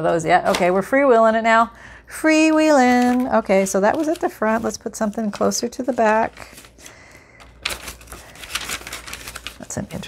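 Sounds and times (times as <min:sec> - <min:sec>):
paper pages turning: 0:02.6 - 0:10.0.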